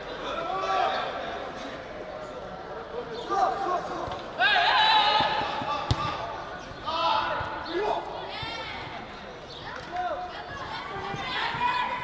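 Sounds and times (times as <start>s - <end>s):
players shouting: 3.3s - 9.0s, 9.8s - 12.0s
football being kicked: 5.2s - 6.2s.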